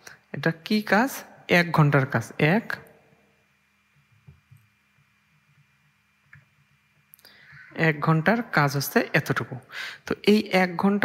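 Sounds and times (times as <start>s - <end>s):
person speaking: 0.0s - 3.0s, 7.2s - 11.0s.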